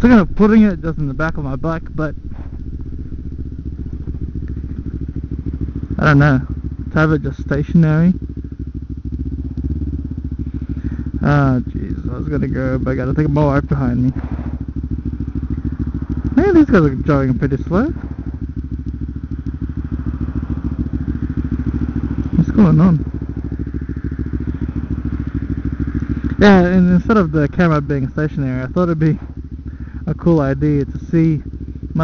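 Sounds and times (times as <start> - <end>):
motorcycle engine idling: 0.0 - 32.0.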